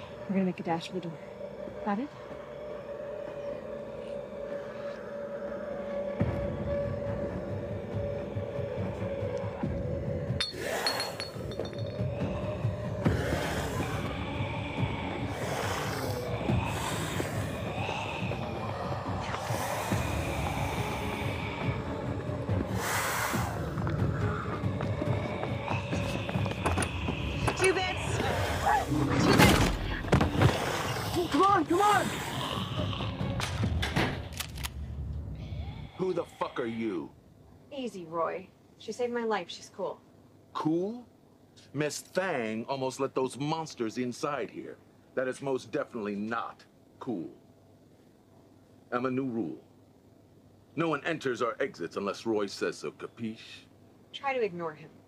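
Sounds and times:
tense score music: 0:00.0 - 0:38.1
loud vocal cries: 0:12.2 - 0:29.2.

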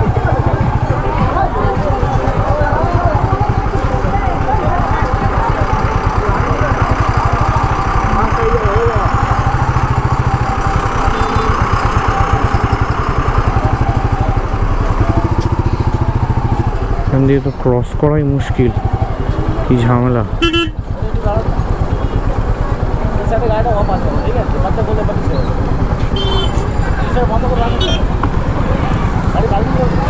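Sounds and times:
crowd chatter: 0:00.0 - 0:30.0
motorcycle engine idling: 0:00.0 - 0:30.0.

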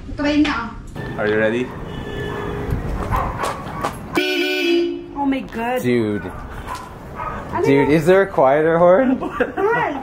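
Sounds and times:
scooter horn blast: 0:01.0 - 0:03.0, 0:04.1 - 0:05.1.

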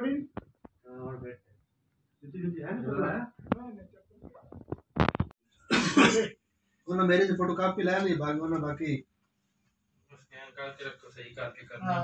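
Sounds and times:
person coughing: 0:05.7 - 0:06.4.

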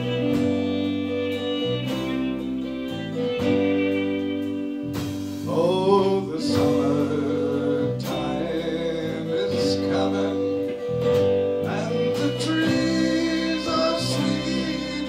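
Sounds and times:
fiddle: 0:00.0 - 0:15.0
folk band playing live: 0:00.0 - 0:15.0.

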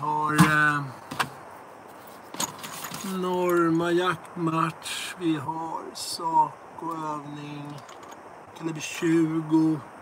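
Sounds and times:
ammunition boxes clicking and knocking: 0:07.6 - 0:08.2.

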